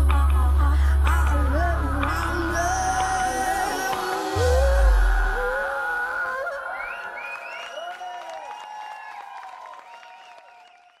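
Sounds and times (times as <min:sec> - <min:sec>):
audience cheering and clapping: 0:05.2 - 0:11.0.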